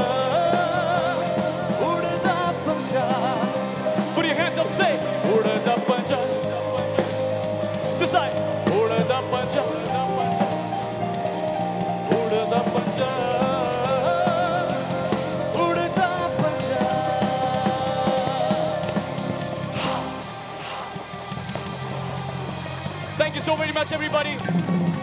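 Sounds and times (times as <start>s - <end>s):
person singing: 0.0s - 21.1s
bass guitar: 0.0s - 25.0s
drums: 0.0s - 25.0s
electric guitars: 0.0s - 25.0s.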